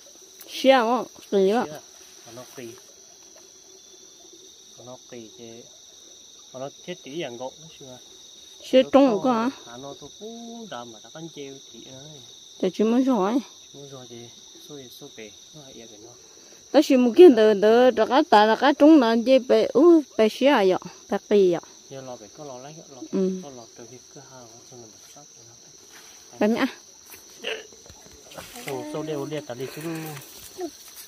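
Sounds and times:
insect chorus droning: 0.0s - 31.0s
nearby speech: 28.4s - 30.7s.

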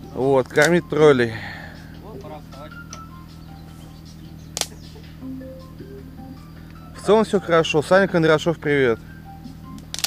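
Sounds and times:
steady low hum: 0.8s - 10.0s
sharp click: 4.6s - 4.8s.

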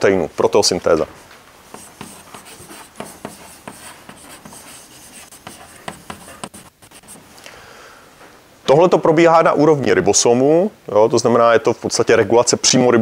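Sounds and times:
chalk scratching on a chalkboard: 1.7s - 7.3s.

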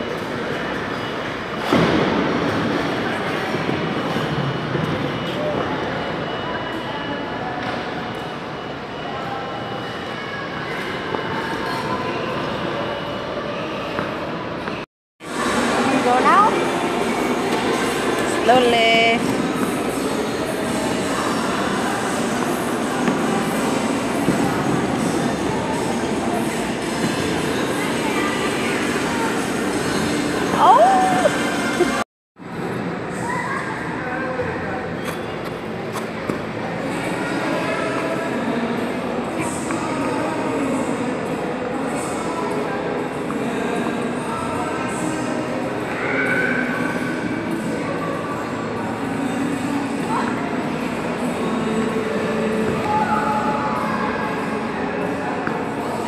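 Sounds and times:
hum of rink hall: 0.0s - 56.0s.

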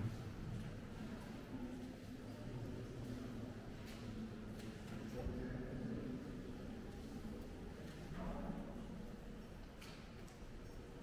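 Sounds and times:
faint murmuring voices: 0.0s - 11.0s.

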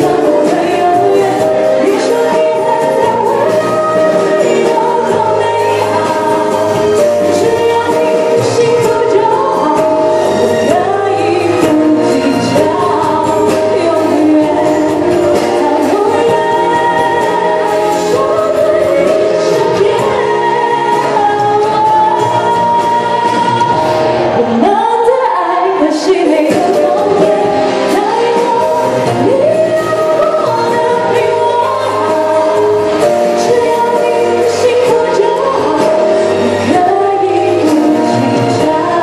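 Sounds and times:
amplified backing track: 0.0s - 39.0s
woman singing pop song: 0.0s - 39.0s.

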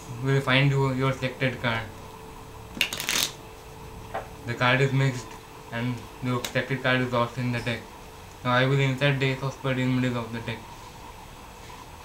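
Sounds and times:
playing cards shuffling: 2.8s - 3.4s.

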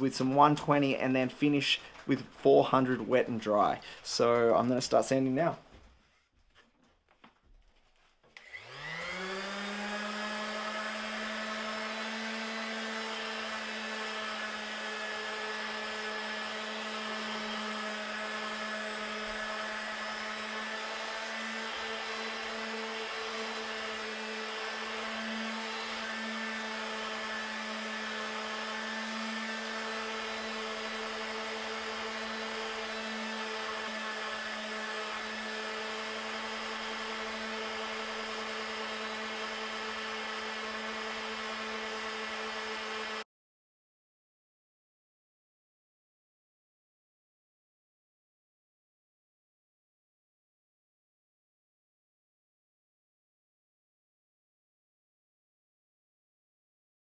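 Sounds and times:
electric orbital sander whine: 8.4s - 43.3s.

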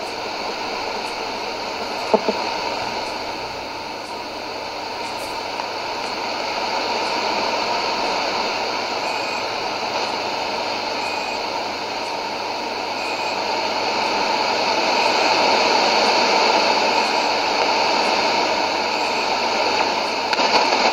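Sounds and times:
radio static hiss: 0.0s - 20.9s.

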